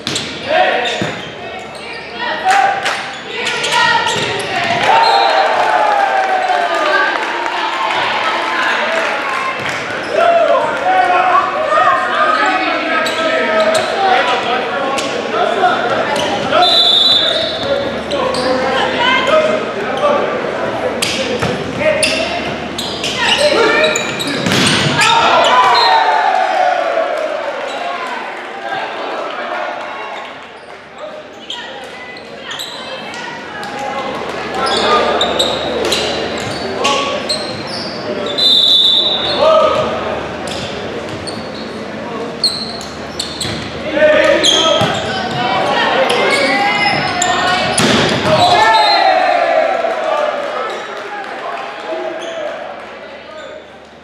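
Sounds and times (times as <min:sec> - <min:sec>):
players shouting: 0:03.4 - 0:14.7, 0:23.1 - 0:30.0, 0:43.8 - 0:52.6
referee's whistle: 0:04.9 - 0:05.4, 0:16.6 - 0:17.7, 0:37.8 - 0:39.4, 0:48.4 - 0:49.2
volleyball hits: 0:24.3 - 0:25.3, 0:47.6 - 0:48.6.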